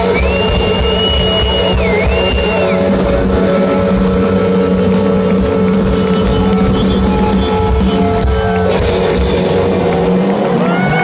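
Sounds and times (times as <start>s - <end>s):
electric guitar with tremolo: 0.0s - 11.0s
live rock band playing: 0.0s - 11.0s.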